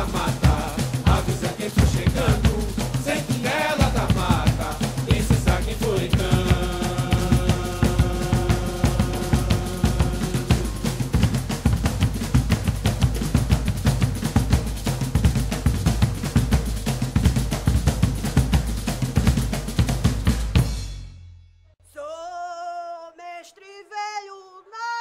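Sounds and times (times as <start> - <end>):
fast hand drumming: 0.0 - 20.7.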